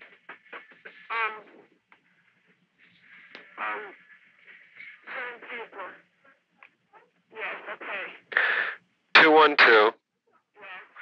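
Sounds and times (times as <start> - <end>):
muffled speech over telephone: 7.6 - 10.0.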